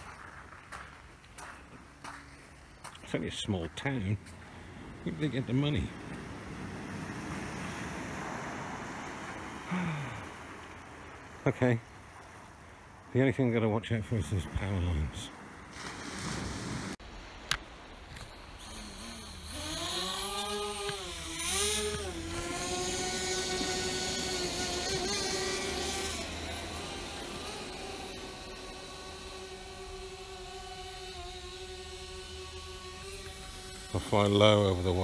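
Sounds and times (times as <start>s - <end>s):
drone motors whining: 18.1s - 35.0s.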